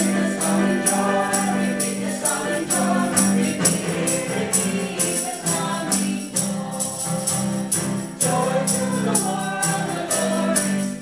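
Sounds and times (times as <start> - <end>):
sharp percussive hits: 0.0 - 8.9
acoustic guitar: 0.0 - 11.0
choir singing: 0.0 - 11.0
keyboard accompaniment: 0.0 - 11.0.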